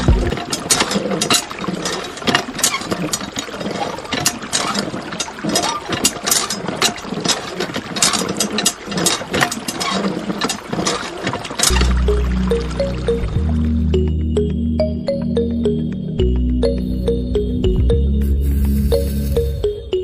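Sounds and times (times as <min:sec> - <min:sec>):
hand water pump clicking: 0:00.0 - 0:13.3.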